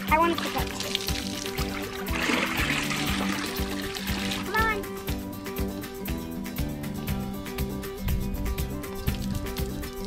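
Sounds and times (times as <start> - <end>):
water splashing and dripping: 0.0 - 5.3, 8.6 - 10.0
background music with steady beat: 0.0 - 10.0.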